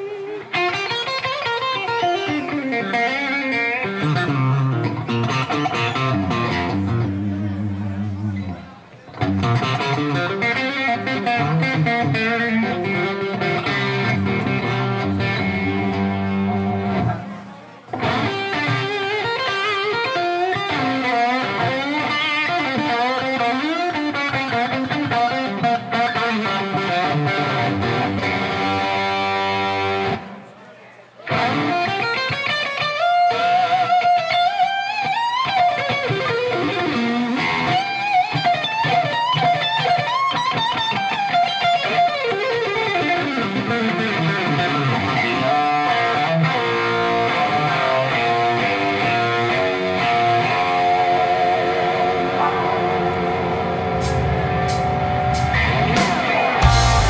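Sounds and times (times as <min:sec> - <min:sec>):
electric guitar lead: 0:00.0 - 0:30.4, 0:31.2 - 0:57.0.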